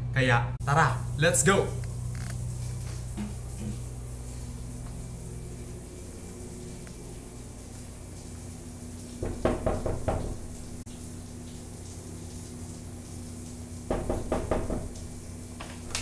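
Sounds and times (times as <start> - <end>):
knuckles knocking on door: 9.2 - 10.4, 13.9 - 14.9.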